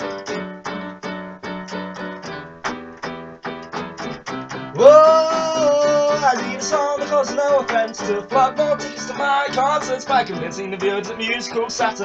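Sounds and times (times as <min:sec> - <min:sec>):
keyboard piano chords: 0:00.0 - 0:12.0
man singing a long note: 0:04.8 - 0:08.6.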